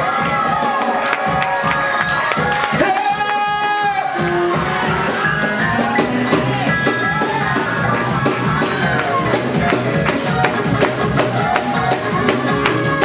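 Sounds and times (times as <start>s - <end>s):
church band with drums and keyboard: 0.0s - 13.0s
gospel singers: 0.0s - 13.0s.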